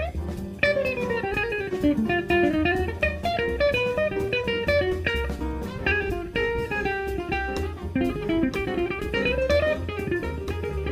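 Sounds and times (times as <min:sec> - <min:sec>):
electric guitar jazz line: 0:00.0 - 0:10.9
low bass notes: 0:00.0 - 0:10.9.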